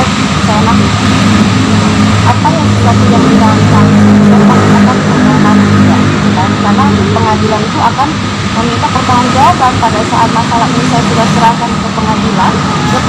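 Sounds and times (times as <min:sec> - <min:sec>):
low motor drone: 0:00.0 - 0:13.0
woman talking: 0:00.0 - 0:13.0.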